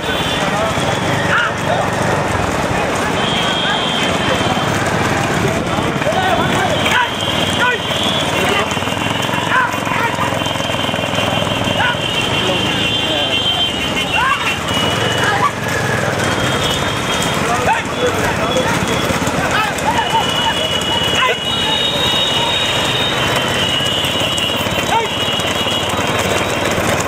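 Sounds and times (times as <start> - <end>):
hooves galloping on asphalt: 0.0 - 27.0
motorcycle engines: 0.0 - 27.0
men shouting and whooping: 3.8 - 10.7, 13.6 - 16.3, 17.2 - 25.5.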